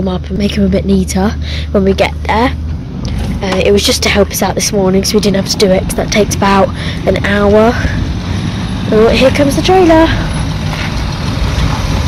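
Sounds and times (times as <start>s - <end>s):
vehicle engine rumbling past: 0.0s - 12.0s.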